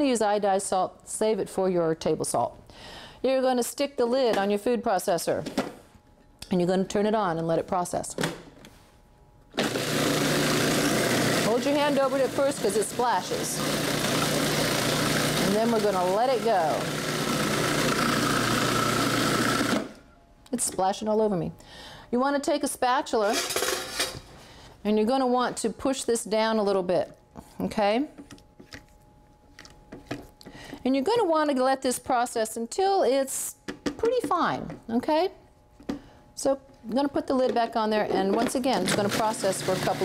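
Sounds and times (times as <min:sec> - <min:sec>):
faint steady hum: 0:00.0 - 0:09.6, 0:19.8 - 0:40.0
food processor motor humming: 0:09.5 - 0:20.1, 0:38.4 - 0:40.0.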